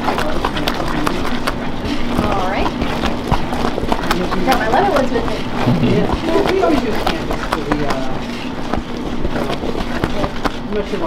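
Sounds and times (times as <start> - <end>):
paddle stirring foaming candy: 0.0 - 11.0.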